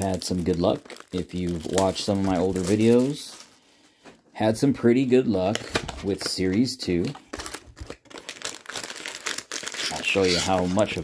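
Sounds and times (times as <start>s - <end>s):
wrapped card packs crinkling: 0.0s - 4.1s, 4.9s - 11.0s.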